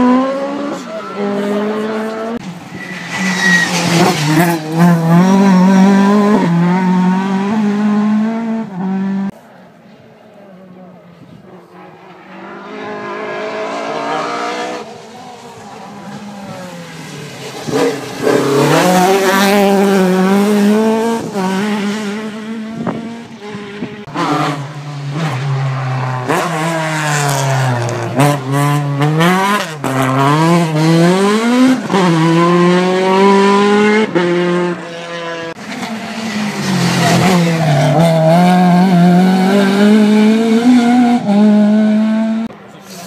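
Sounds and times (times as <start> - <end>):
rally car engine revving: 0.0 - 9.4, 11.6 - 43.0.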